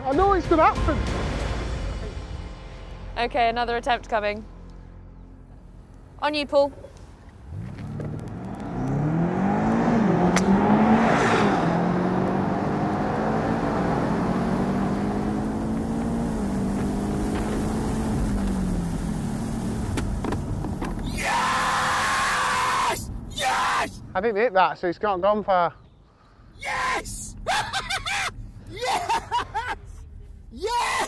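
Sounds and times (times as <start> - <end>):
car engine accelerating: 6.7 - 22.0.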